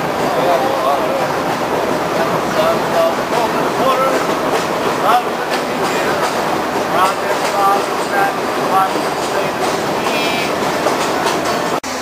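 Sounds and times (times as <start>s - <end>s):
train rumbling along track: 0.0s - 12.0s.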